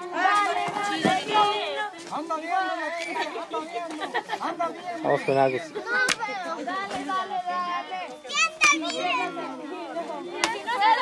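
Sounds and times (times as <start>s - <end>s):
children shouting and chattering: 0.0s - 11.0s.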